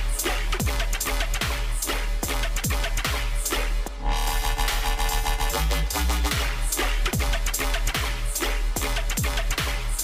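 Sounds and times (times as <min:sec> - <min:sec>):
dubstep track with heavy sub-bass: 0:00.0 - 0:10.0.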